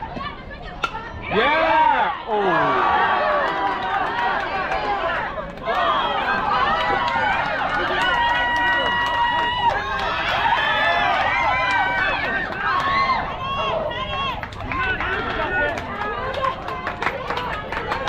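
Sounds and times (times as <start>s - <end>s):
children shouting and cheering: 1.3s - 18.0s.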